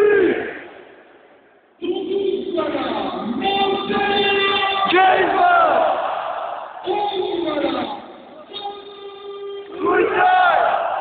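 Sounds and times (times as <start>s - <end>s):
crowd shouting and chanting: 3.2s - 11.0s
loud yell close by: 9.6s - 11.0s.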